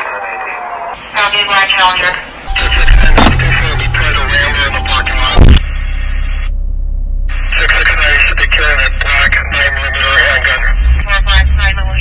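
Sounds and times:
indistinct voices: 1.6s - 5.6s
low rumble: 2.5s - 9.8s.

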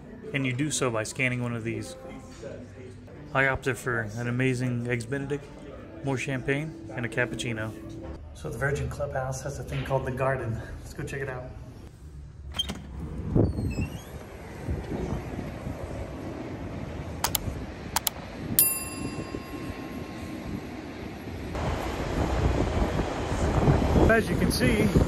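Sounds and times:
wind on microphone: 13.0s - 25.0s
bell ding: 18.6s - 21.3s
rush of noise: 19.2s - 25.0s.

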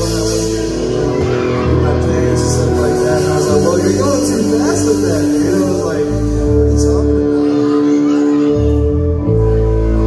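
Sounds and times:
live band playing: 0.0s - 10.0s.

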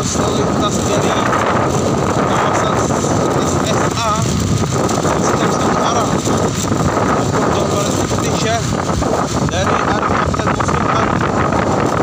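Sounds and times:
motorcycle engine running: 0.0s - 12.0s
tyre noise on road: 0.0s - 12.0s
wind on microphone: 0.0s - 12.0s.

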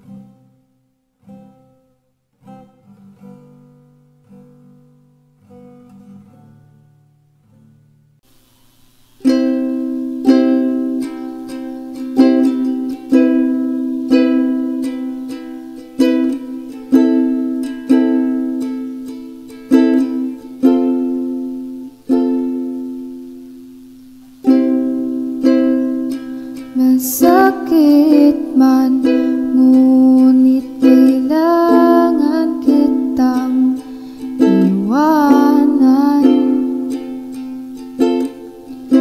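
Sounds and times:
plucked string chords ringing: 9.2s - 23.6s, 24.4s - 39.0s.

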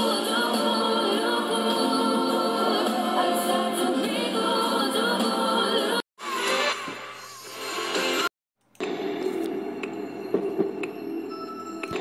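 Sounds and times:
layered singing voices: 0.0s - 6.0s
pop backing music: 0.0s - 6.8s.

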